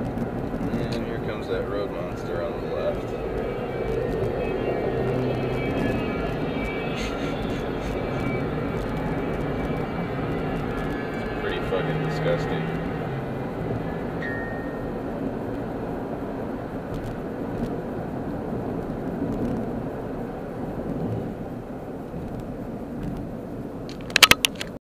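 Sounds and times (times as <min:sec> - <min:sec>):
car road and tyre noise: 0:00.0 - 0:24.8.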